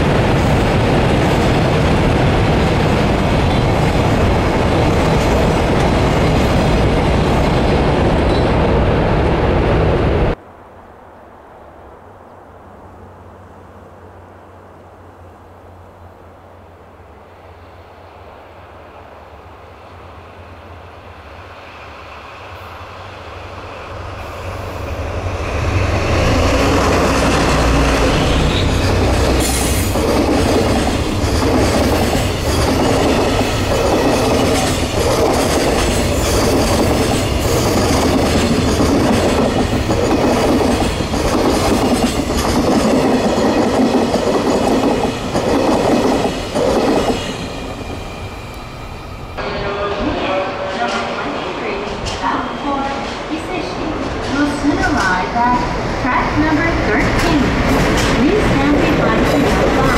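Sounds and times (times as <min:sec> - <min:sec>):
diesel locomotive engine rumbling: 0:12.0 - 0:59.9
station ambience: 0:18.2 - 0:41.8, 0:42.4 - 0:59.9
train wheels clickety-clack: 0:24.2 - 0:48.6, 0:50.7 - 0:55.6, 0:56.5 - 0:59.9.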